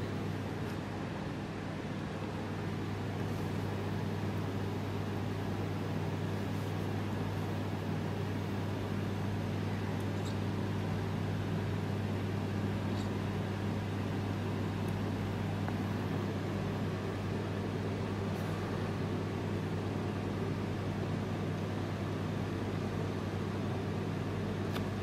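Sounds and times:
steady low hum with tones: 0.0s - 25.0s.

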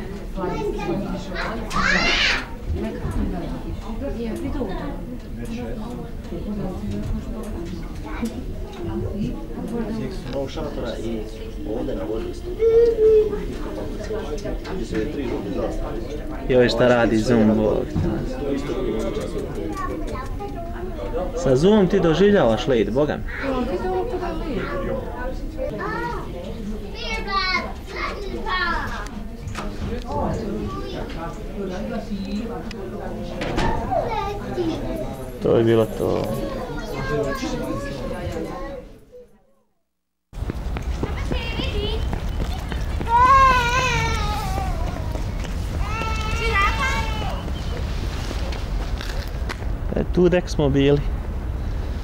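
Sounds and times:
child calling out: 1.4s - 2.6s, 12.6s - 13.4s, 43.1s - 45.2s, 45.8s - 47.5s
child squealing: 1.7s - 2.5s, 43.1s - 45.1s.

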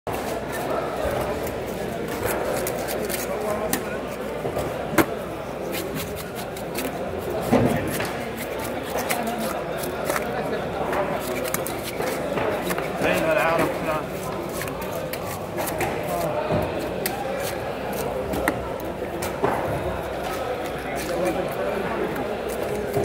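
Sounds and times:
indistinct background voices: 0.1s - 23.0s.

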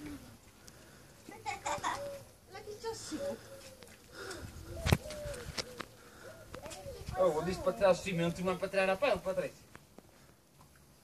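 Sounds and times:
child and women talking: 2.5s - 3.6s, 6.6s - 8.6s.

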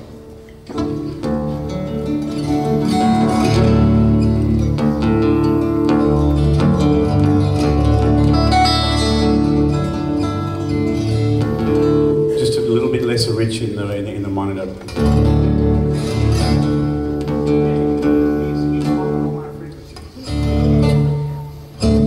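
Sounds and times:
acoustic guitar melody and chords: 0.0s - 22.0s.

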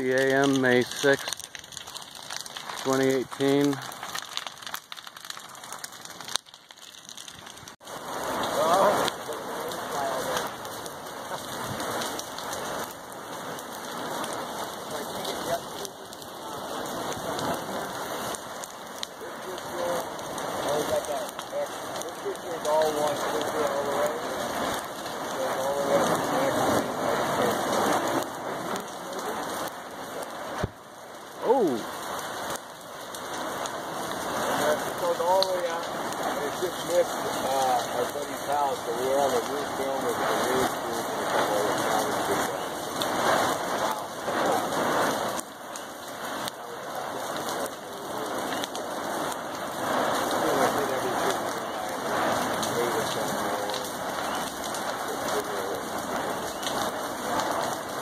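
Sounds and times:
lava crackling and popping: 0.0s - 58.0s.

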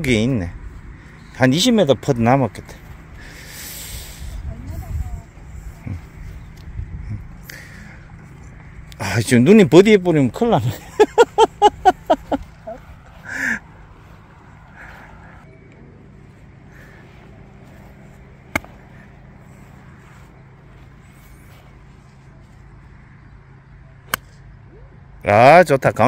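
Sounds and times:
golf club striking ball: 18.5s - 19.0s.

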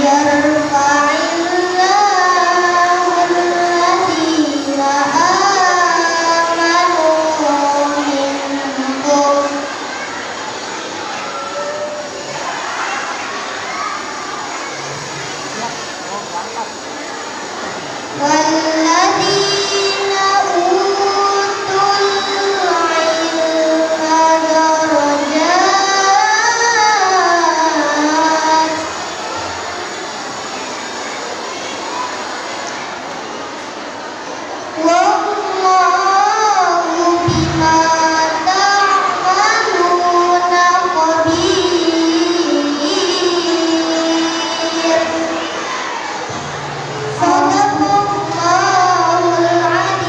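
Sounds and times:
boy reciting melodically: 0.0s - 29.8s, 34.6s - 50.0s.

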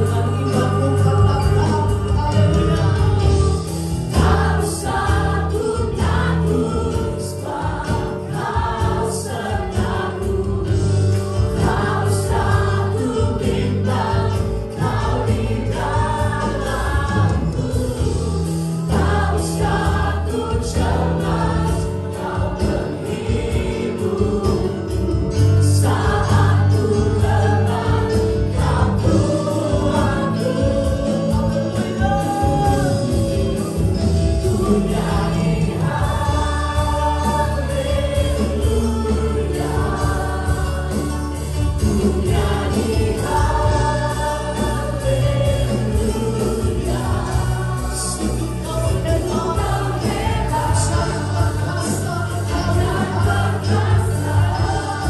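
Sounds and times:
guitar: 0.0s - 55.0s
keyboards: 0.0s - 55.0s
people singing into microphones: 0.0s - 55.0s
steady bass line: 0.0s - 55.0s.

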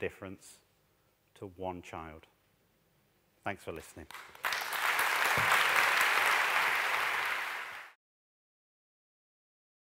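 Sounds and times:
audience applauding: 4.1s - 8.0s.

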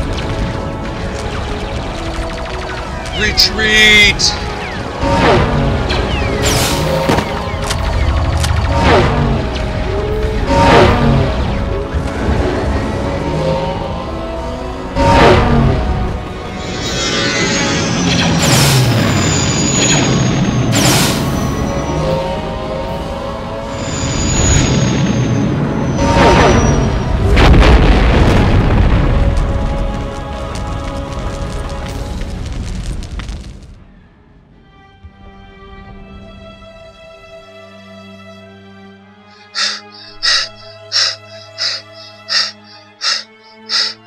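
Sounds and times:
background music: 0.0s - 27.4s, 28.4s - 32.5s, 34.2s - 44.0s
explosions with deep boom: 27.0s - 33.9s
explosions: 27.2s - 29.8s
high falling whistles: 39.4s - 44.0s.

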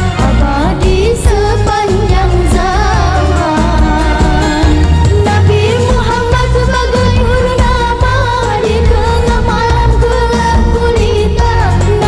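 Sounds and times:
backing music with heavy bass: 0.0s - 12.0s
girl singing into a microphone: 0.2s - 12.0s.

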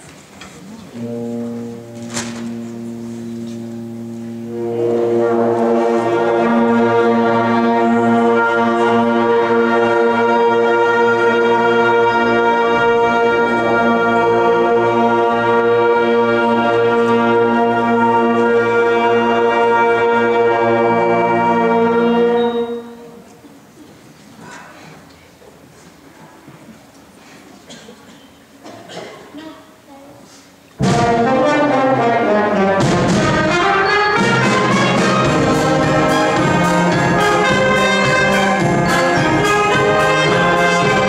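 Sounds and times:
concert band holding a note: 0.6s - 9.1s
low brass holding a note: 0.9s - 23.2s.

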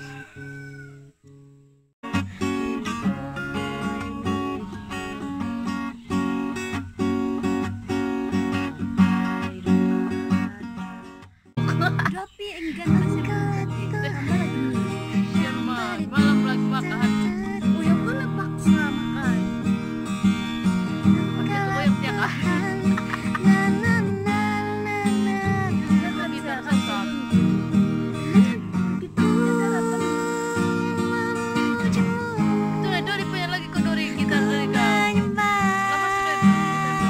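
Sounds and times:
acoustic guitar strumming: 0.4s - 37.0s
person's voice: 9.3s - 11.0s, 11.6s - 19.7s, 21.0s - 27.5s, 28.2s - 37.0s.

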